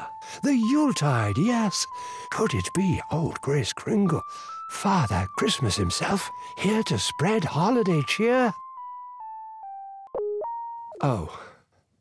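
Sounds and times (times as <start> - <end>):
synthesizer melody: 0.0 - 3.4, 4.1 - 11.3.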